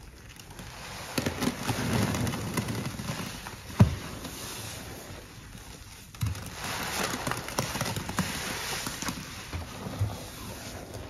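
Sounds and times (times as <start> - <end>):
wet sponge squelching: 0.5 - 11.0.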